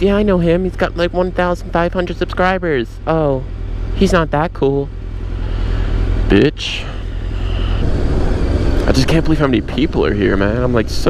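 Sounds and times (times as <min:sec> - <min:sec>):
motorcycle engine running: 0:00.0 - 0:11.0
wind rumble on microphone: 0:07.6 - 0:10.8.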